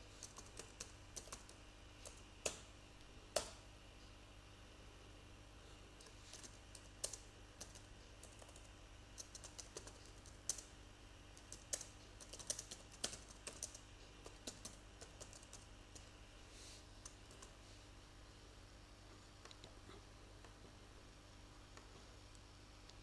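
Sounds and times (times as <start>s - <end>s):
faint low hum: 0.0s - 23.0s
keyboard keys clicking: 0.2s - 2.6s, 6.3s - 10.7s, 11.4s - 16.0s.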